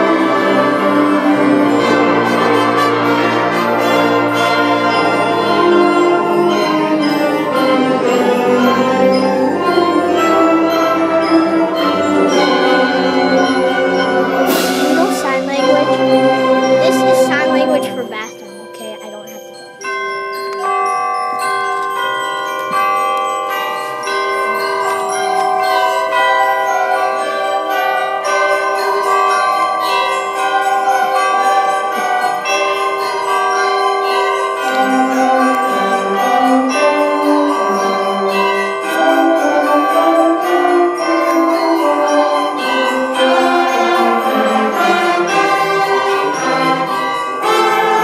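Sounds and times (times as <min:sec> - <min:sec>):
concert band playing a fanfare: 0:14.5 - 0:17.8.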